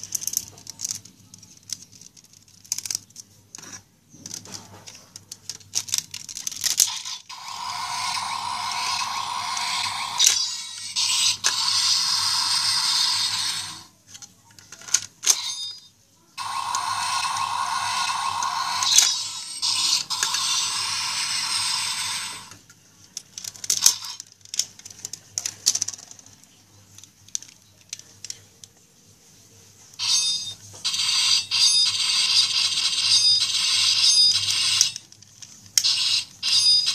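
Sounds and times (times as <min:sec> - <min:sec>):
toy electronic sound effects: 0:06.8 - 0:13.9, 0:15.2 - 0:22.6, 0:30.0 - 0:35.0, 0:35.8 - 0:36.9
plastic clicks: 0:22.6 - 0:28.7.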